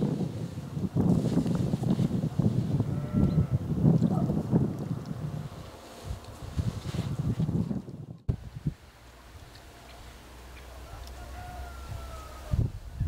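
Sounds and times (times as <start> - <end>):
wind buffeting microphone: 0.0 - 10.0, 11.2 - 13.0.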